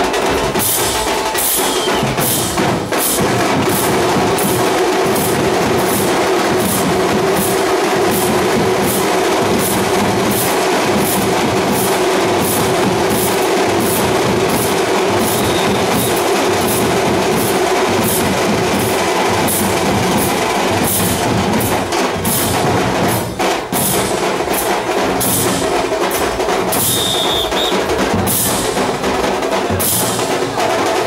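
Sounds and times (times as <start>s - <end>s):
loud drumming with clashes: 0.0s - 31.0s.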